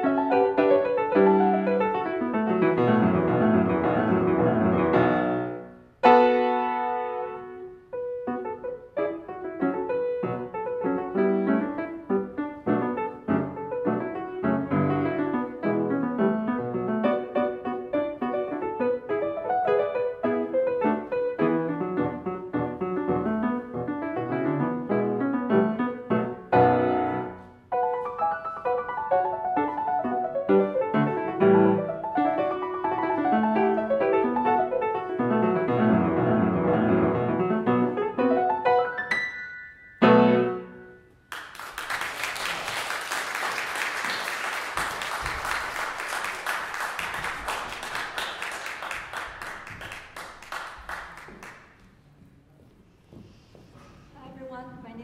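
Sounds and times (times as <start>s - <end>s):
solo grand piano: 0.0s - 42.1s
audience applause: 41.3s - 51.8s.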